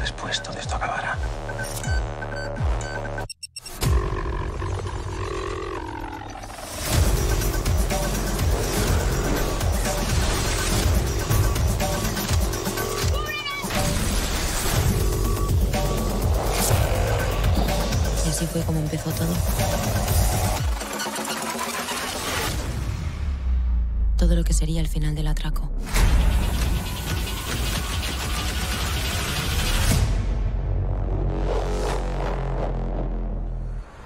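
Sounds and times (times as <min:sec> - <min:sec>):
dramatic trailer music: 0:00.0 - 0:34.0
deep bass: 0:29.5 - 0:34.0.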